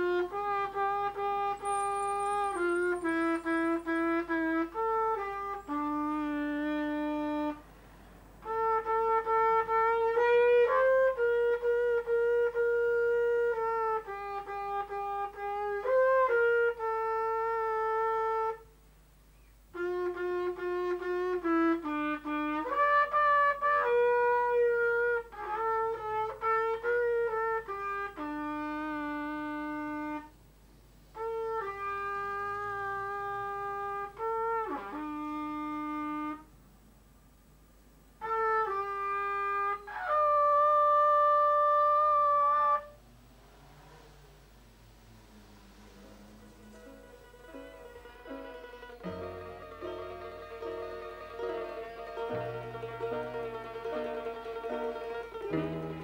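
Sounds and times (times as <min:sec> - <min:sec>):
trumpet solo melody: 0:00.0 - 0:07.8, 0:08.4 - 0:18.8, 0:19.7 - 0:30.4, 0:31.1 - 0:36.6, 0:38.2 - 0:43.0, 0:45.6 - 0:56.0.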